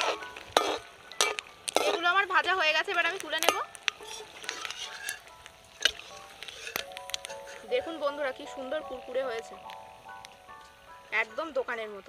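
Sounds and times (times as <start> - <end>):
skimmer clinking against wok: 0.0 - 8.1
metal skimmer scraping a wok: 0.0 - 8.2
hot oil sizzling: 0.0 - 12.0.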